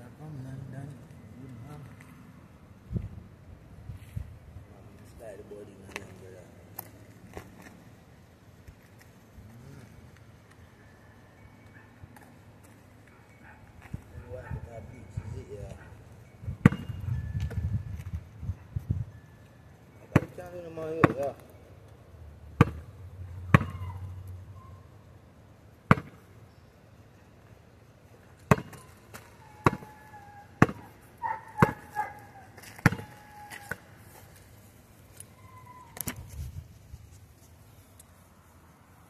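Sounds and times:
basketball bouncing on dirt: 16.5 - 18.2, 20.1 - 21.5, 22.5 - 24.0, 25.9 - 26.3, 28.4 - 34.0.

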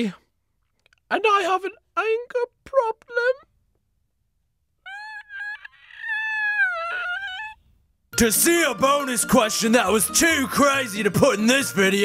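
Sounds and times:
high-pitched sped-up voice crying: 4.8 - 7.6.

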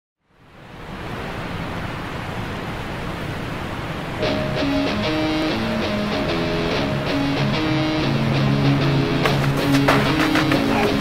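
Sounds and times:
waterfall rushing: 0.4 - 11.0.

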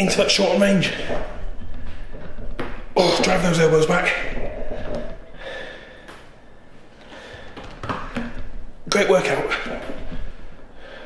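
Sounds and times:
man breathing hard: 5.3 - 8.3, 10.2 - 11.0.

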